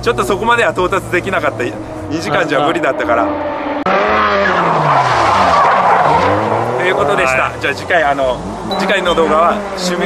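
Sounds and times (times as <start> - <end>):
car engine: 0.0 - 10.0
tyres squealing: 4.3 - 10.0.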